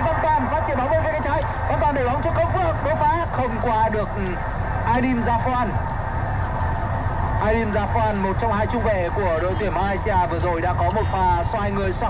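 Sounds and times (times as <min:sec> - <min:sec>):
commentator talking: 0:00.0 - 0:05.8, 0:07.4 - 0:12.0
low broadcast background noise: 0:00.0 - 0:12.0.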